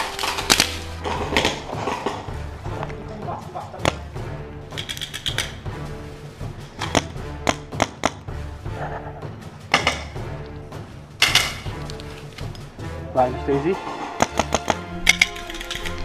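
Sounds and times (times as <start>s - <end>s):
paintball markers firing pops: 0.0s - 2.2s, 3.8s - 4.0s, 4.8s - 5.6s, 6.8s - 8.3s, 14.2s - 16.0s
background music with bass line: 0.0s - 16.0s.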